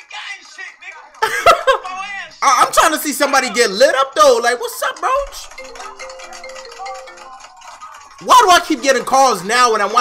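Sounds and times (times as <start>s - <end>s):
marimba phone ringtone: 5.2s - 8.9s.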